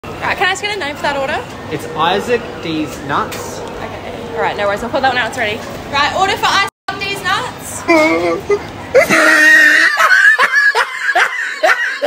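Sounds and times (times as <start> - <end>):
person laughing in bursts: 8.4 - 12.0.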